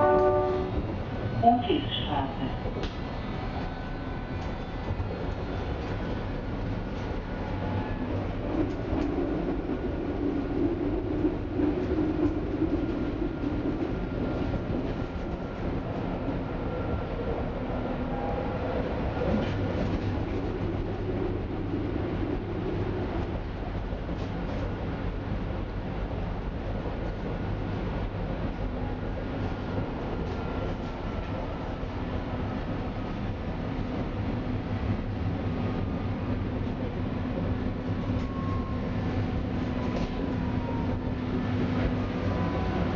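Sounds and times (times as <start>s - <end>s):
subway wheels rumbling: 0.0s - 42.9s.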